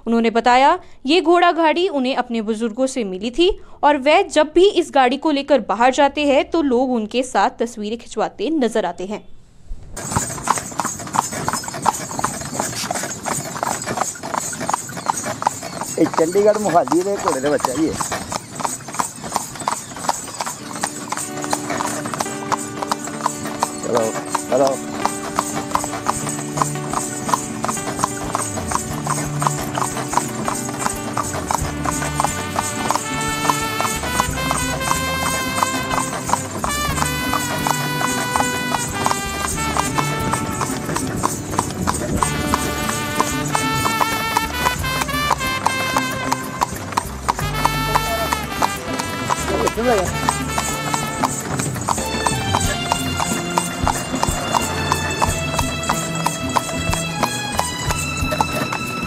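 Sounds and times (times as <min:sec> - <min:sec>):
horse hooves clip-clopping on road: 0:10.0 - 0:59.0
music playing: 0:20.6 - 0:59.0.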